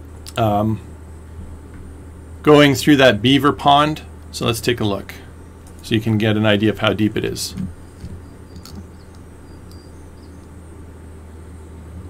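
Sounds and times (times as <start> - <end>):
steady low hum: 0.0 - 12.0
high bird chirps: 7.8 - 10.5.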